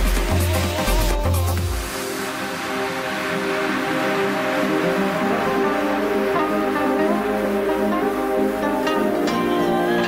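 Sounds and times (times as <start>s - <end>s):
background music held chords: 0.0s - 10.0s.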